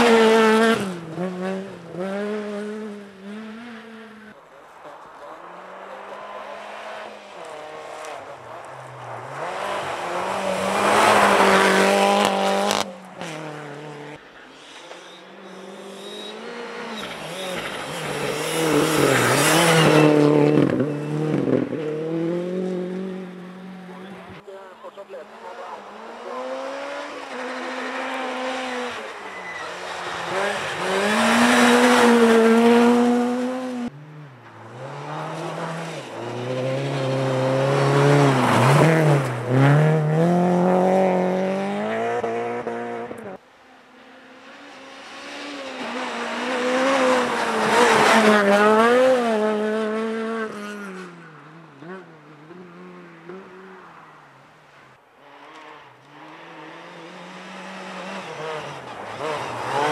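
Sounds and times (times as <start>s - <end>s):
rally car engines passing by: 0.0s - 59.9s.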